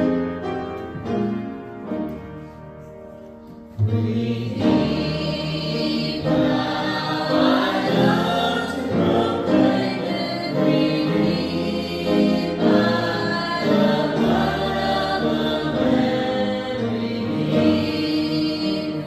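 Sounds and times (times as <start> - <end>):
instrumental accompaniment with bass: 0.0 - 19.0
voices singing a hymn: 3.7 - 19.0.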